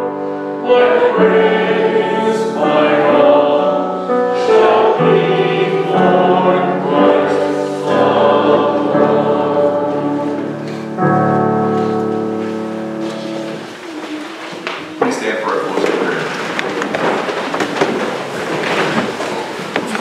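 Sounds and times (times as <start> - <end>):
group singing a slow hymn: 0.0 - 11.9.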